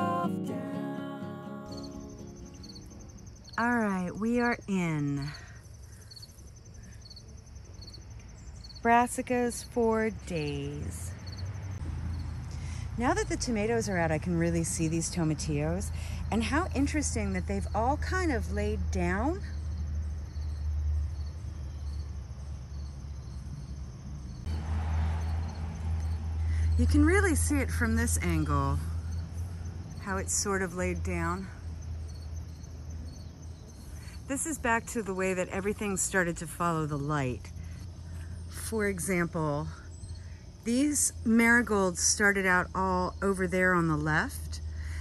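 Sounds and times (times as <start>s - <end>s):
crickets chirping: 0.0s - 45.0s
low rumble: 24.4s - 29.6s.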